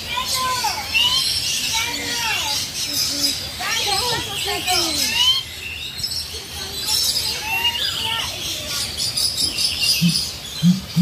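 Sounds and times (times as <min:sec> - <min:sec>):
birds chirping: 0:00.0 - 0:11.0
low bird call: 0:09.4 - 0:11.0.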